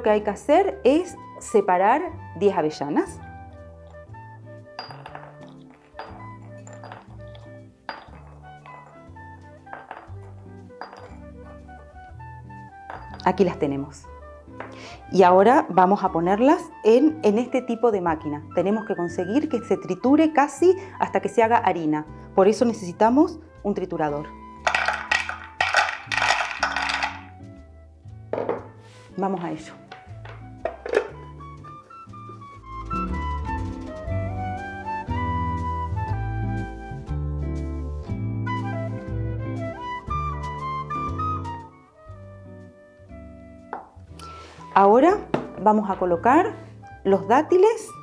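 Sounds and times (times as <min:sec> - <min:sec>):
soft background music: 0:00.0 - 0:48.0
nuts clinking into glass dish: 0:04.8 - 0:11.6, 0:12.9 - 0:13.4, 0:24.6 - 0:27.3.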